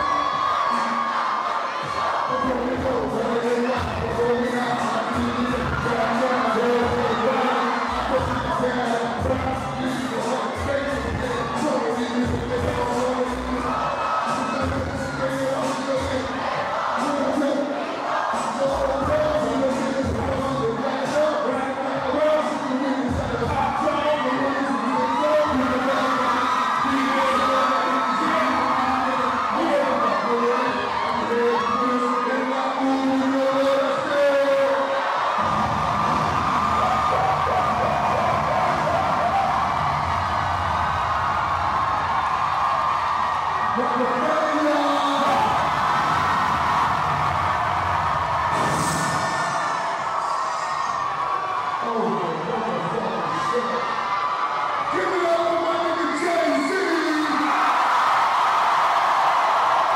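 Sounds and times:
music: 0.0s - 24.2s, 35.4s - 43.4s
crowd shouting and whooping: 0.0s - 59.9s.

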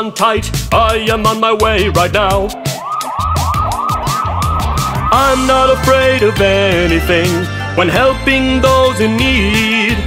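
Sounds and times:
children's song backing track: 0.0s - 10.0s
cartoon siren wail: 2.2s - 6.9s.

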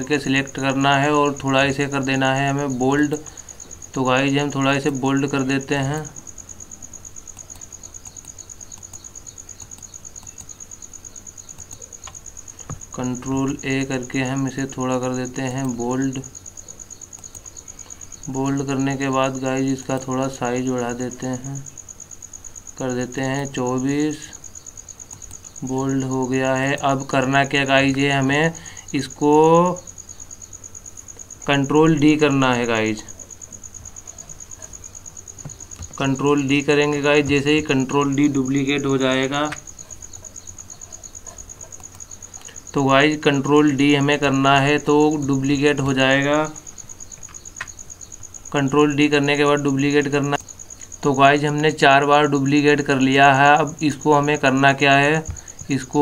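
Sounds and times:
high insect chirping: 0.0s - 56.0s
faint mouse clicks: 7.3s - 10.6s, 11.5s - 12.8s.

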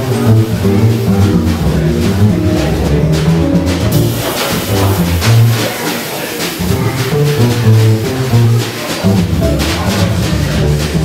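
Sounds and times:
plucked double bass: 0.0s - 11.0s.

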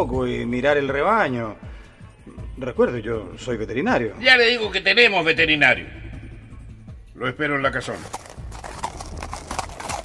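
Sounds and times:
horse hooves clip-clopping: 7.8s - 10.0s.

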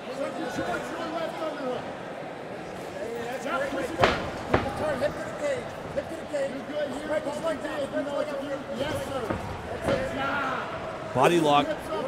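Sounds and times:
crowd and corner voices: 0.0s - 12.0s.

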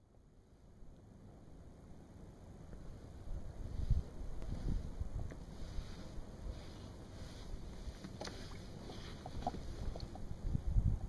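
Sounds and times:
wind rumbling on microphone: 2.6s - 11.0s.

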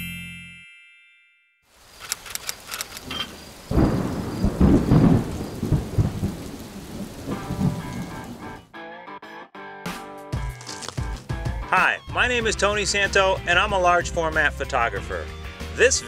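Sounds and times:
rain falling: 1.7s - 8.7s
thunder rolling: 3.1s - 8.6s.

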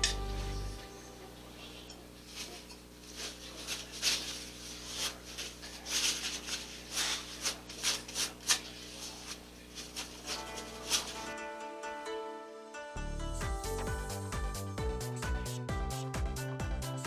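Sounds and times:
paper towel wiping glass: 1.8s - 11.4s.

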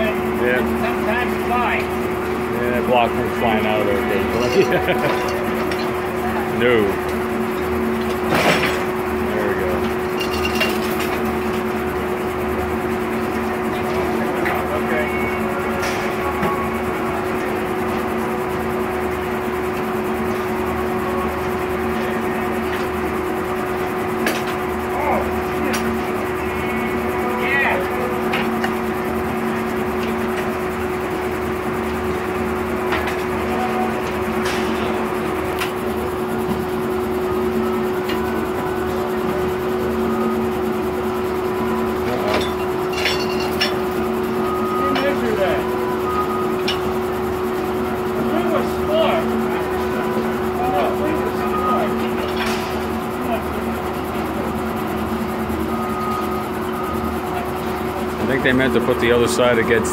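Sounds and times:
saw blade humming: 0.0s - 10.1s, 56.4s - 59.9s.

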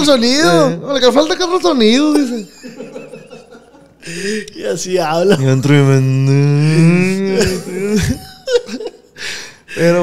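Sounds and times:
man holding low vowel: 5.4s - 8.2s.

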